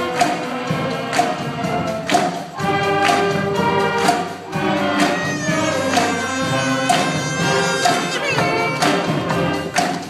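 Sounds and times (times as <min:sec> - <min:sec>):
wind instrument chords: 0:00.0 - 0:09.8
percussion hits: 0:00.0 - 0:10.0.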